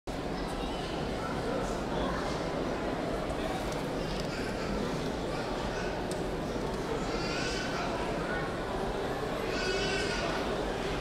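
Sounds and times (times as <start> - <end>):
steady background noise: 0.1 - 11.0.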